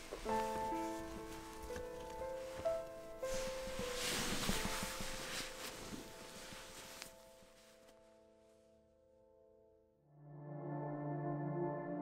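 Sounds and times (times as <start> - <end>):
nylon fabric rustling: 0.0 - 8.6
soft musical drone: 10.1 - 12.0.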